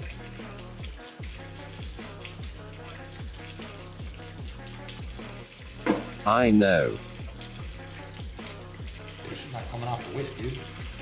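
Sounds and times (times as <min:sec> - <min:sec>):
background music with beat: 0:00.0 - 0:11.0
water splashing over whisk: 0:00.0 - 0:11.0
tap running into sink: 0:05.7 - 0:06.4.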